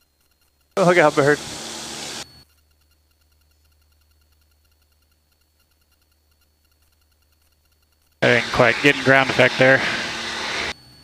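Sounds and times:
intercom channel hiss: 0.8s - 2.2s, 8.2s - 10.8s.

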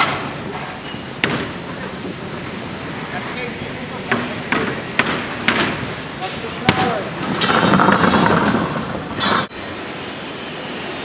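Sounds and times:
hammer strikes: 0.0s - 1.6s, 4.0s - 9.5s
construction site noise: 0.0s - 11.0s.

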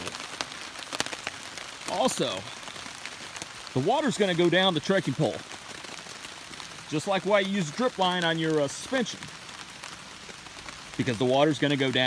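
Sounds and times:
rain on a tarp: 0.0s - 12.0s.

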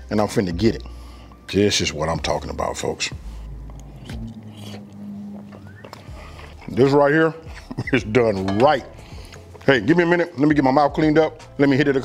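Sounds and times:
person humming: 3.8s - 6.3s
spoon clinks: 8.5s - 8.9s.

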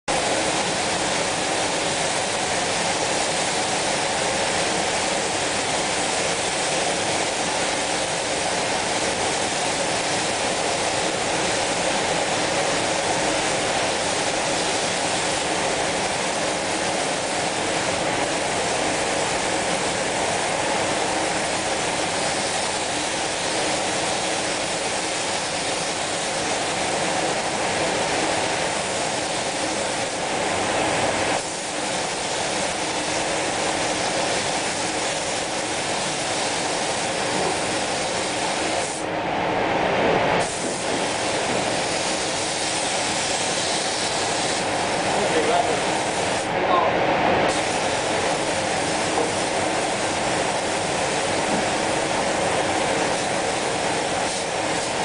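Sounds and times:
spray guns hissing: 0.1s - 30.6s, 31.2s - 39.1s, 40.4s - 46.5s, 47.5s - 55.0s.

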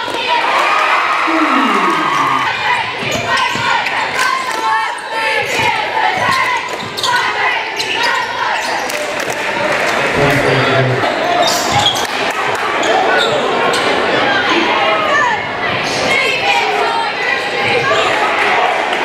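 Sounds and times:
crowd chatter and shouts: 0.0s - 19.0s
person calling out: 1.3s - 2.6s.

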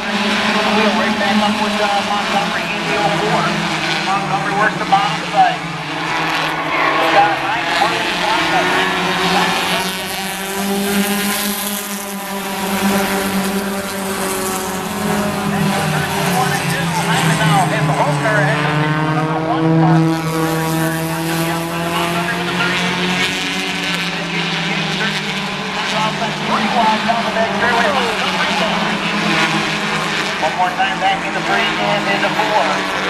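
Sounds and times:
race car engines passing: 0.0s - 33.0s.

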